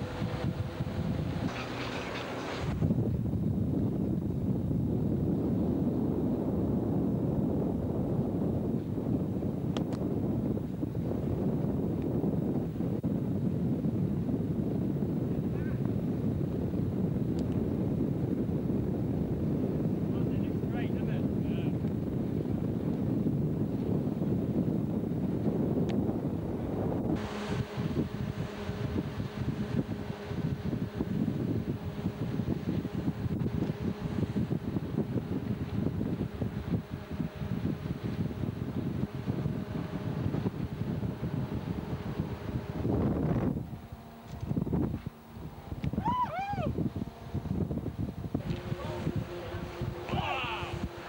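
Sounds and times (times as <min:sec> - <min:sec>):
boat engines droning: 0:00.0 - 0:06.4, 0:10.4 - 0:51.0
wind on microphone: 0:00.0 - 0:51.0.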